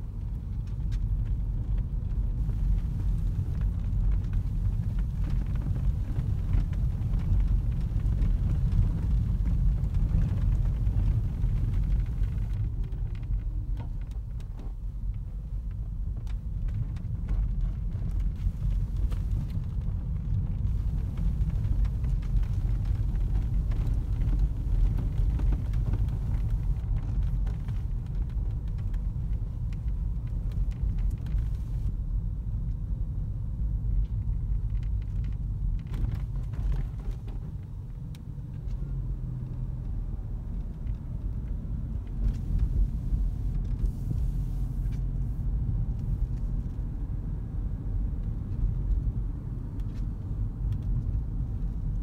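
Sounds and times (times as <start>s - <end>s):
car cabin road rumble: 0.0s - 52.0s.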